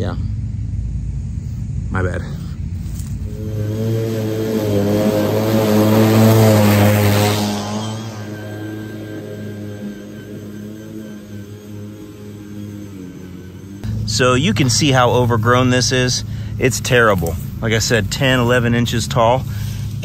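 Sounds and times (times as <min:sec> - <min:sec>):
lawn mower motor and blade hum: 0:02.8 - 0:20.0.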